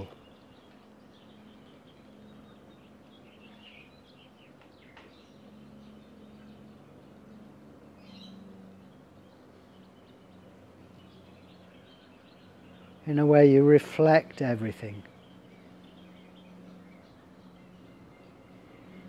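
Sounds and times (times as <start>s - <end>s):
birds chirping: 0.0s - 19.0s
low steady hum: 0.0s - 19.0s.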